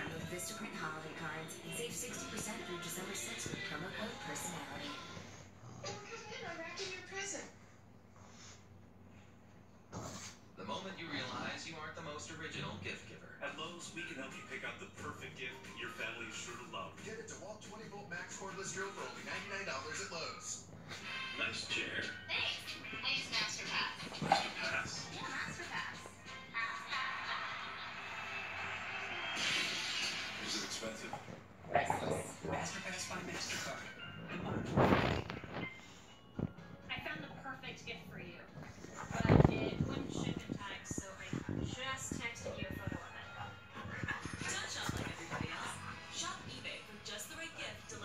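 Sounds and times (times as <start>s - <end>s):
dogs play-fighting: 0.0s - 6.6s, 9.8s - 11.6s, 13.6s - 37.4s, 38.5s - 46.5s
television speech and music: 0.0s - 48.0s.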